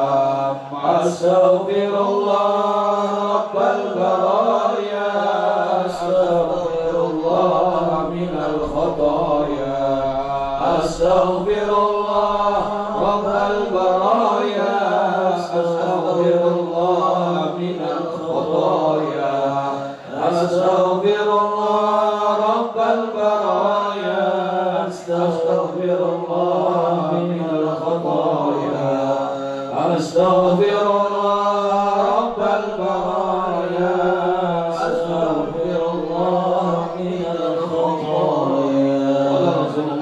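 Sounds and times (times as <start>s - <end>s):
men chanting into microphones: 0.0s - 40.0s.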